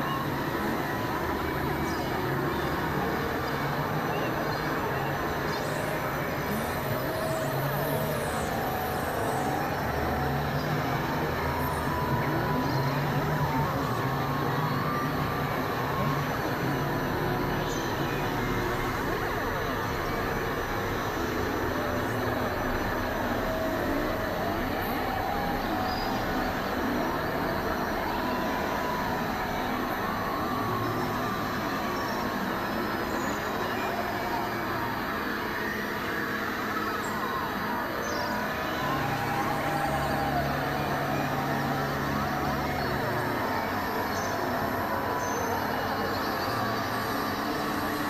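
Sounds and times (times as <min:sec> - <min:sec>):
industrial noise drone music: 0:00.0 - 0:48.0.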